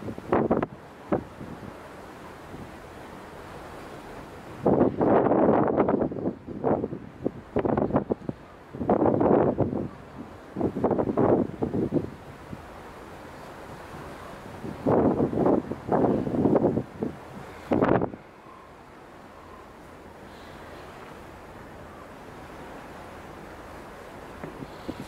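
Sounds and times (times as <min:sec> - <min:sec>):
wind buffeting microphone: 0:00.0 - 0:01.8, 0:04.4 - 0:12.7, 0:13.6 - 0:18.6, 0:24.2 - 0:25.0.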